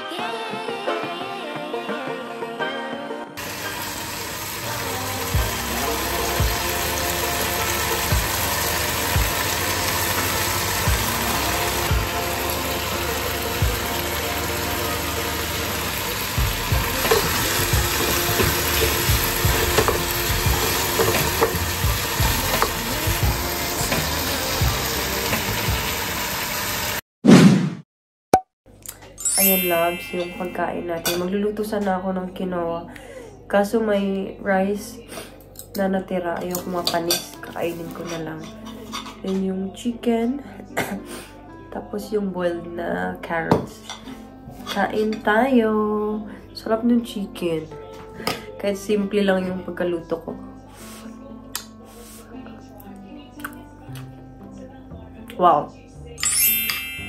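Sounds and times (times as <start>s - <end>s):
chicken sizzling in pan: 3.4s - 27.0s.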